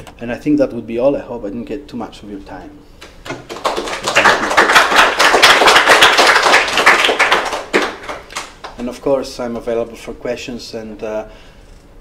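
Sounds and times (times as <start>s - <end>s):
audience applauding: 3.1s - 8.8s.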